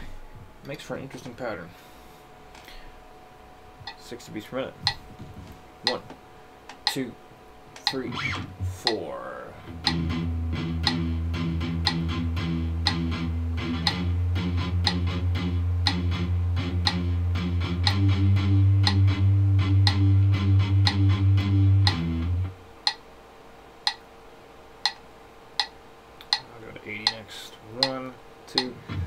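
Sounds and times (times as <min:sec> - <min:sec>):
metronome clicks: 0:03.8 - 0:04.0, 0:05.8 - 0:06.0, 0:06.7 - 0:07.1, 0:07.8 - 0:09.1, 0:09.7 - 0:23.0, 0:23.8 - 0:24.0, 0:24.8 - 0:25.0, 0:25.6 - 0:27.2, 0:27.8 - 0:28.8
palm-muted electric guitar riff: 0:07.8 - 0:09.0, 0:09.6 - 0:22.6, 0:28.6 - 0:29.0.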